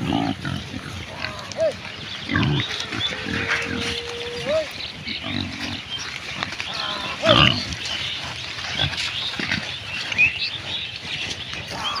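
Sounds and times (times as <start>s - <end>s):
pigs grunting: 0.0s - 12.0s.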